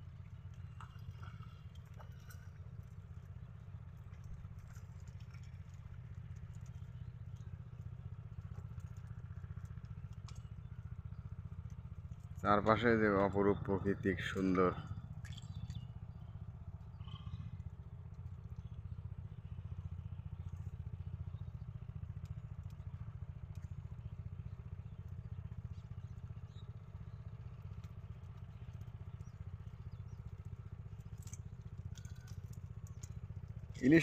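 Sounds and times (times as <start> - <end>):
small engine running steadily: 0.0 - 34.0.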